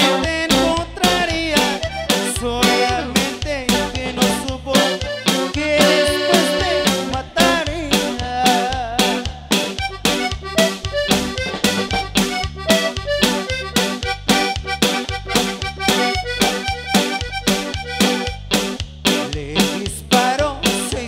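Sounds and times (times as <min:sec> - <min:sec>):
accordion melody: 0:00.0 - 0:20.9
drums: 0:00.0 - 0:21.0
electric bass: 0:00.0 - 0:21.0.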